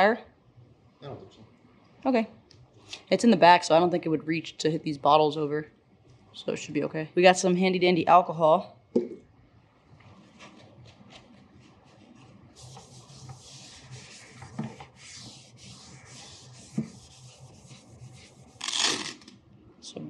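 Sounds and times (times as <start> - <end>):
paper towel rubbing a surface: 10.1 - 19.1.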